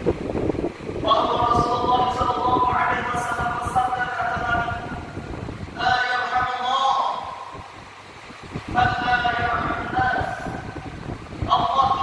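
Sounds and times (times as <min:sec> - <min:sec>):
man chanting a sermon: 0:01.0 - 0:07.7, 0:08.6 - 0:12.0.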